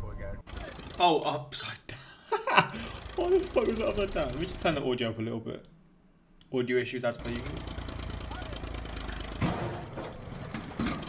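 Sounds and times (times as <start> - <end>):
backhoe engine running under load: 0.4 - 1.1, 2.7 - 4.9, 7.2 - 11.0.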